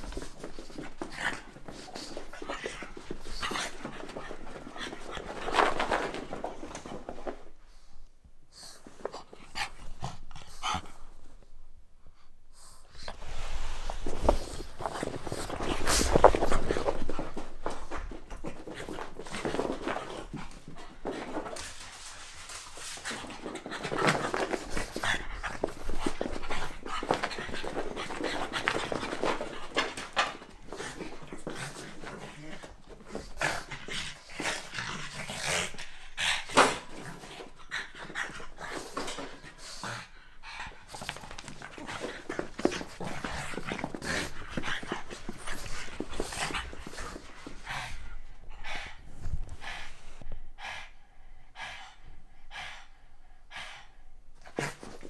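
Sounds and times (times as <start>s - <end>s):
paws scrabbling: 0.0s - 7.5s, 14.0s - 35.6s, 40.7s - 49.6s
dogs panting hard: 14.3s - 55.0s.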